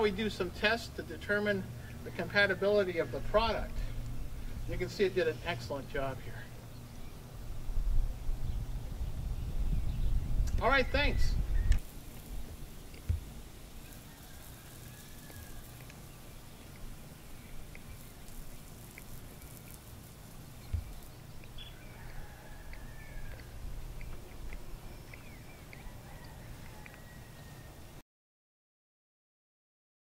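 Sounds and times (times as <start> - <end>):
low rumble: 5.8 - 10.6
bird chirps: 15.2 - 27.7.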